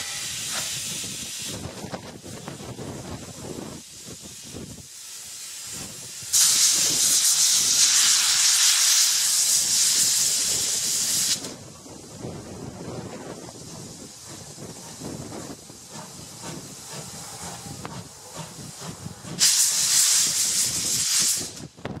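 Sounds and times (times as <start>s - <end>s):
locomotive rolling with quiet rumble: 0.0s - 22.0s
loud steam hiss: 0.0s - 22.0s.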